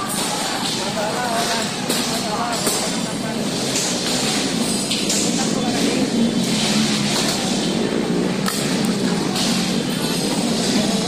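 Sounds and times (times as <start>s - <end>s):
indistinct voices talking: 0.0s - 11.0s
traffic noise: 0.0s - 11.0s.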